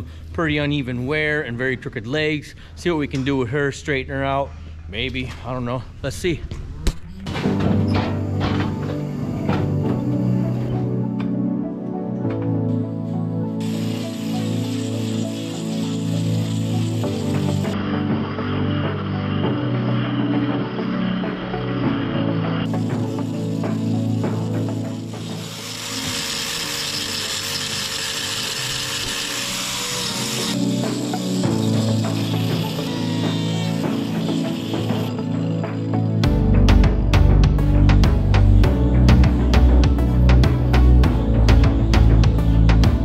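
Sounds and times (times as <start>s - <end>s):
background music: 6.2s - 43.0s
power grinder sanding hoof: 7.4s - 11.0s, 13.6s - 43.0s.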